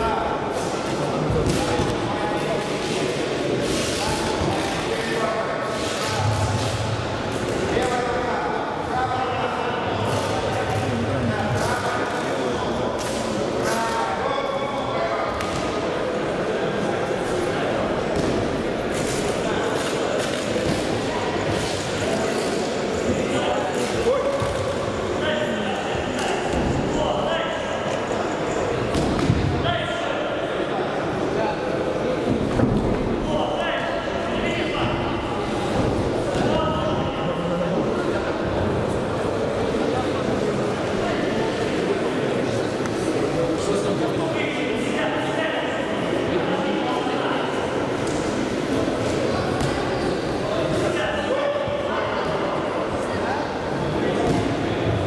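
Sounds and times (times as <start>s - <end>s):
voices calling out in hall: 0.0s - 55.0s.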